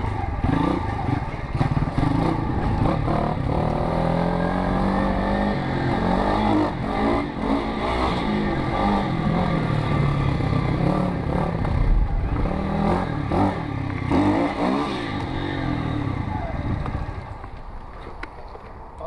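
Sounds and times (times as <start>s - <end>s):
pit bike engine revving: 0.0s - 17.4s.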